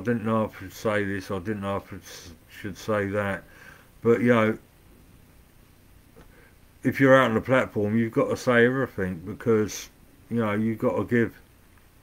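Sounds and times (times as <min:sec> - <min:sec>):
man talking: 0:00.0 - 0:04.6, 0:06.8 - 0:11.5.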